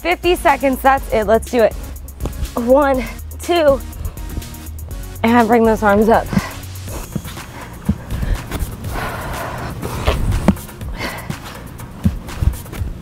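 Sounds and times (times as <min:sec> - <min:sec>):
background music: 0:00.0 - 0:13.0
dull thuds on exercise mat: 0:10.0 - 0:10.7, 0:12.0 - 0:13.0.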